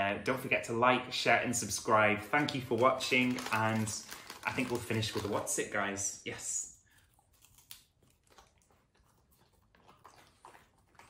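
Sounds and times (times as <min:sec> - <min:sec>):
dog chewing a treat: 0:07.0 - 0:11.0.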